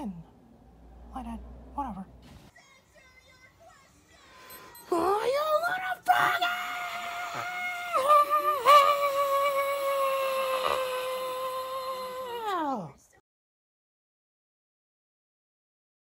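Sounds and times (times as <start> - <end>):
person screaming high-pitched: 5.0 - 12.9.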